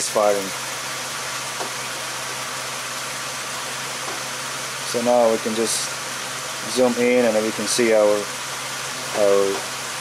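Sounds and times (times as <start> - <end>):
car engine idling: 0.1 - 10.0.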